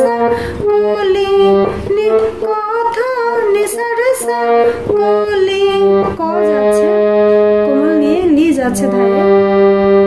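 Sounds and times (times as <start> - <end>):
woman singing: 0.0 - 9.5
harmonium playing slow melody: 0.0 - 10.0.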